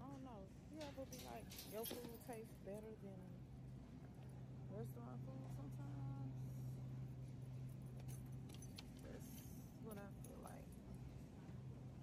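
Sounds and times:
light metallic jingles and clicks: 0.0s - 2.9s, 7.4s - 11.2s
steady low hum: 0.0s - 12.0s.

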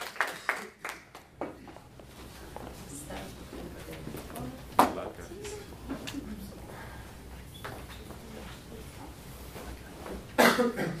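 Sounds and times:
person coughing: 10.4s - 11.0s.

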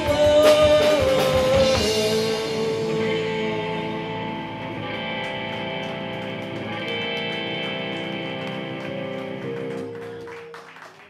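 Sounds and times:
live rock band instrumental: 0.0s - 10.9s.

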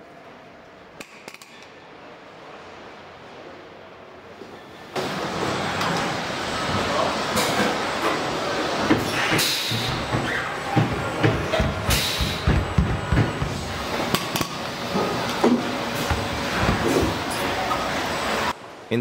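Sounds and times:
factory din: 4.9s - 18.6s
knocks and clunks: 8.8s - 13.8s
air hisses: 11.9s - 12.5s.

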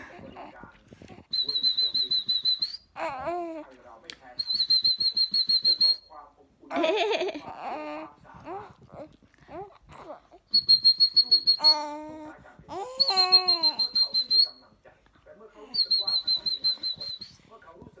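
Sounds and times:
high steady whistle: 1.3s - 2.8s, 4.4s - 6.1s, 10.5s - 11.8s, 13.0s - 14.6s, 15.7s - 17.4s
baby squealing: 11.3s - 13.9s.

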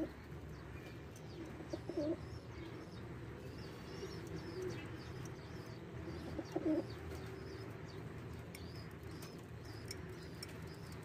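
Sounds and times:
pigeons cooing: 0.0s - 0.3s, 1.4s - 5.3s, 6.0s - 7.8s.

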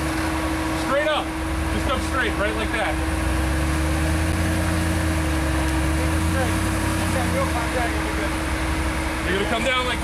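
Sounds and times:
engine rumbling at low revs: 0.0s - 10.0s.

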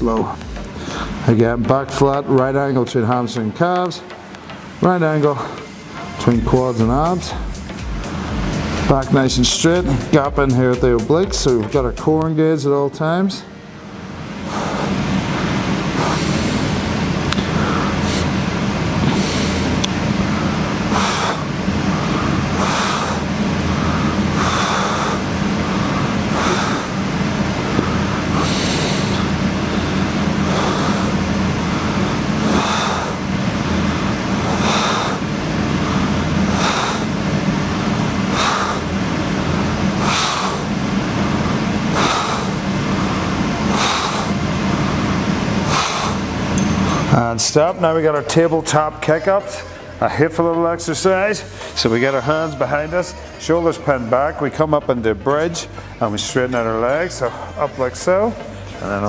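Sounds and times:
steady low hum: 0.0s - 59.0s
man breathing hard: 0.2s - 1.3s, 14.3s - 47.1s, 51.5s - 51.8s.

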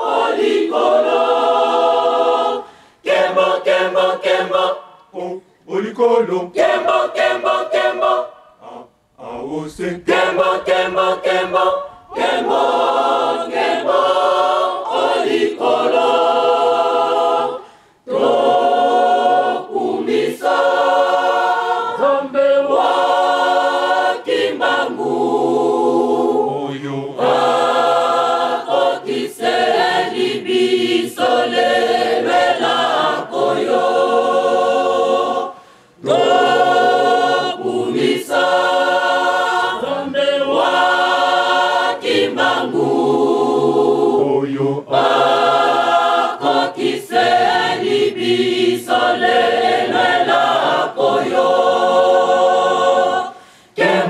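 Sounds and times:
crowd singing without instruments: 0.0s - 54.0s.

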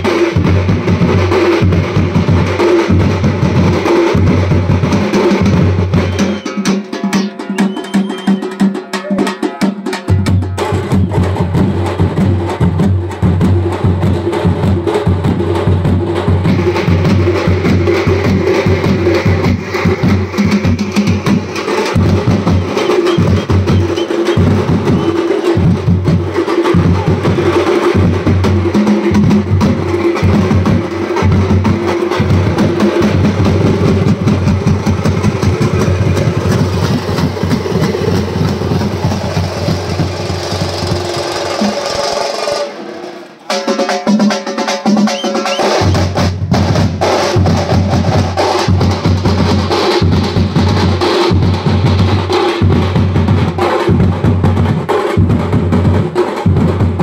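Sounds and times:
bass drums and frame drums beating: 0.0s - 57.0s.

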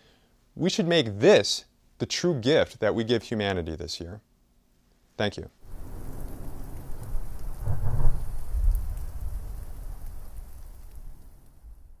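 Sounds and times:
low rumble of thunder: 5.6s - 12.0s
rain hiss: 5.6s - 12.0s.

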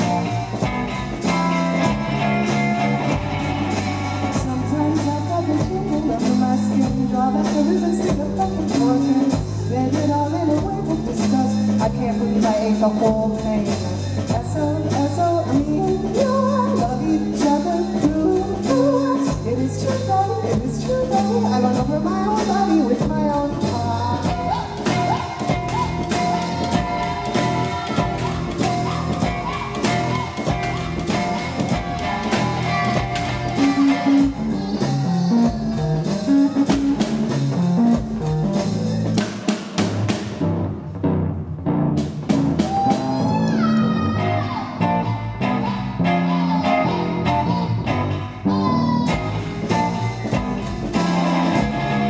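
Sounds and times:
woman singing: 0.0s - 36.9s, 42.8s - 52.0s
bass notes: 0.0s - 52.0s
drums: 0.0s - 52.0s.

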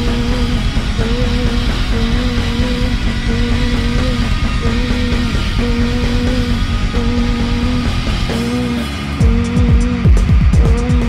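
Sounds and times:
bass and drums: 0.0s - 11.0s
electric guitar riff: 0.0s - 11.0s.

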